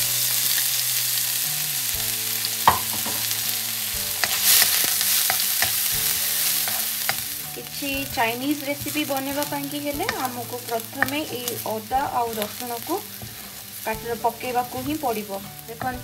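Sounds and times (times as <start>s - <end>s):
ginger and garlic sizzling in oil: 0.0s - 16.0s
wooden spatula stirring: 4.1s - 16.0s.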